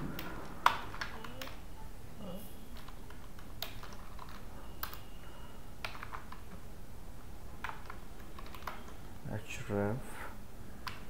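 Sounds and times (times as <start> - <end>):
keyboard keystroke clicks: 0.0 - 1.6, 2.8 - 5.2, 5.8 - 6.4, 7.6 - 9.0
low background noise: 0.0 - 11.0.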